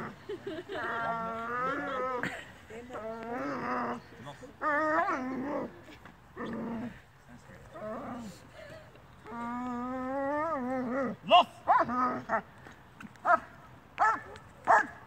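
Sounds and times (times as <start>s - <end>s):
dog whining and growling: 3.3s - 5.8s, 6.4s - 7.0s, 9.3s - 11.2s.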